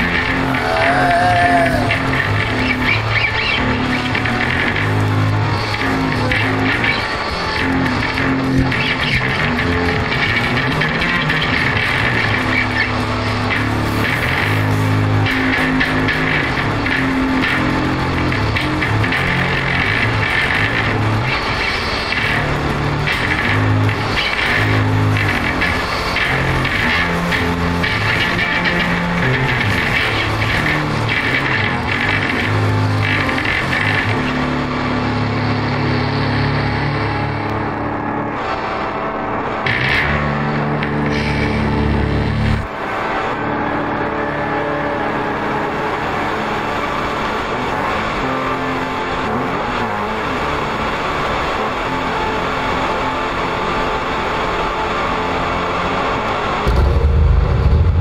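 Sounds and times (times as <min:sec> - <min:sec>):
low bass notes: 0:00.0 - 0:53.7, 0:55.2 - 0:58.0
distorted electric guitar: 0:00.0 - 0:58.0.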